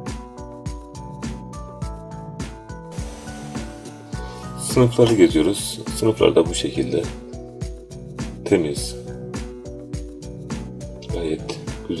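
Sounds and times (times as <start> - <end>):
music with steady beat: 0.1 - 12.0.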